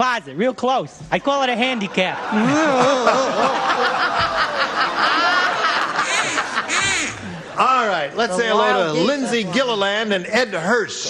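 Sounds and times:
audience laughing: 1.7 - 8.1.

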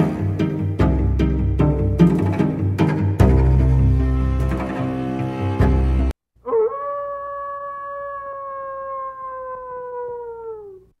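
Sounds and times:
long howl: 6.4 - 10.9.

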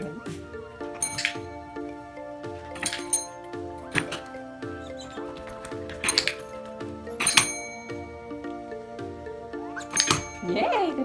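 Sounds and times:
background music: 0.0 - 11.0
service bell metallic clinks: 7.2 - 8.1, 9.8 - 10.6.

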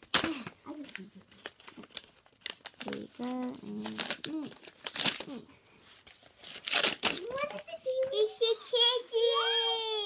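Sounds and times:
tissue paper crinkling and tearing: 0.0 - 7.7
child's voice: 7.2 - 10.0.

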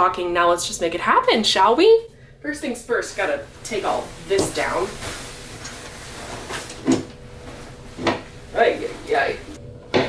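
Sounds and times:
fabric rustling: 3.0 - 9.6.

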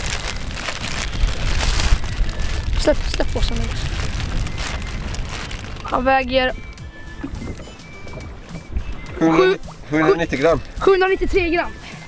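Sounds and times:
crackling rustle: 0.0 - 6.3
wind buffeting microphone: 0.0 - 11.7.

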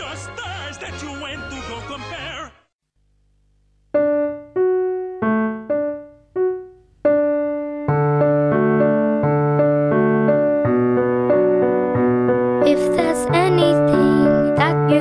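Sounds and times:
piano music: 4.0 - 15.0.

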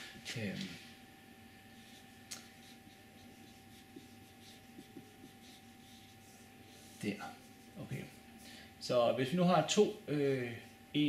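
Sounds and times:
marker writing on whiteboard: 1.8 - 8.2.

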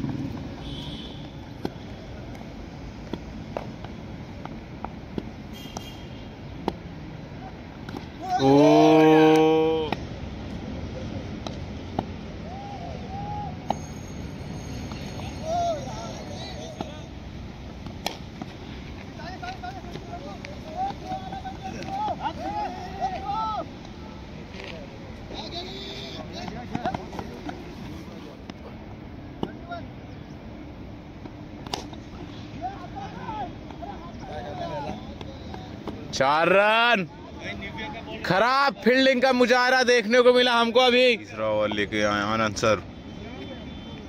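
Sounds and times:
open-air background noise: 0.0 - 44.0
steady background noise: 0.0 - 44.0
distant players calling: 3.8 - 44.0.

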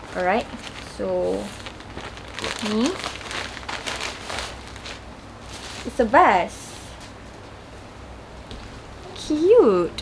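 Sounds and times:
plastic bag crinkling: 0.0 - 6.3.

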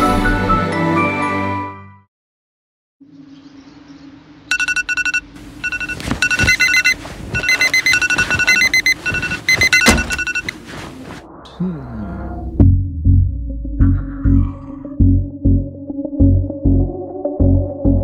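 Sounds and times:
phone alarm beeping: 4.5 - 10.6
thuds: 5.8 - 10.5.

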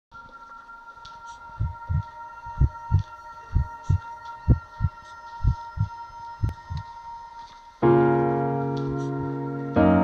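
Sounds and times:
steady high hum: 1.4 - 7.4
heartbeat thumps: 1.5 - 6.9.

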